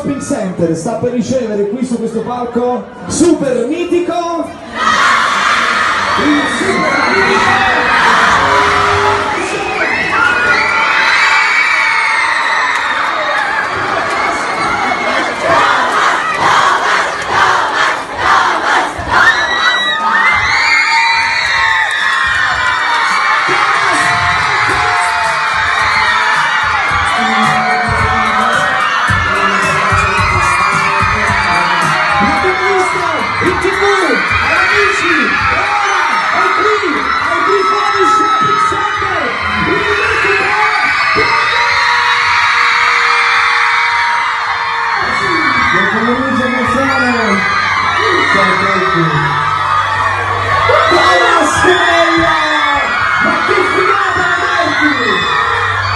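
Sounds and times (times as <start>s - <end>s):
crowd screaming and cheering: 0.0s - 55.9s.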